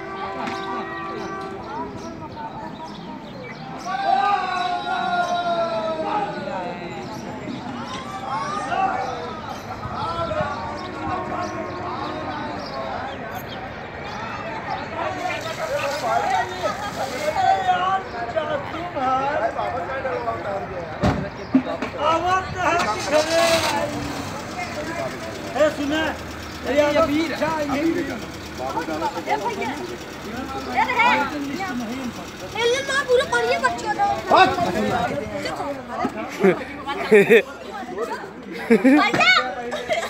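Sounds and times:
people calling out: 0.0 - 18.1, 22.7 - 40.0
group of people chattering: 0.0 - 40.0
car engine running: 22.7 - 36.2.

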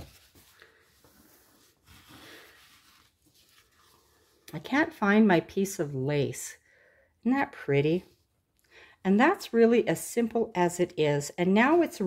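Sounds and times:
hand rustling paper: 0.0 - 4.5.

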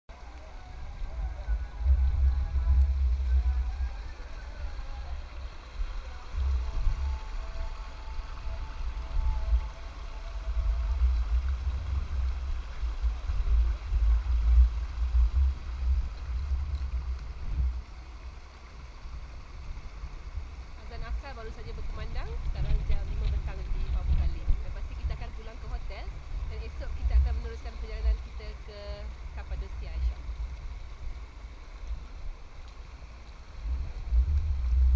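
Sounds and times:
wind buffeting microphone: 0.7 - 32.5, 33.5 - 34.9.

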